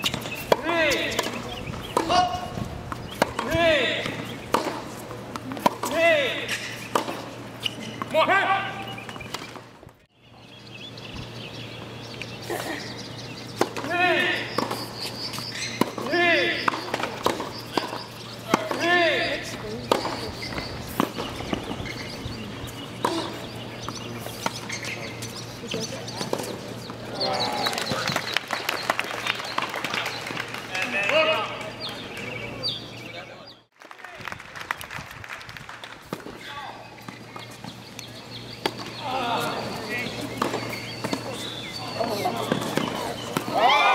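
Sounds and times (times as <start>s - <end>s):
tennis ball off rackets: 0.0s - 9.9s, 11.8s - 27.0s, 36.0s - 43.9s.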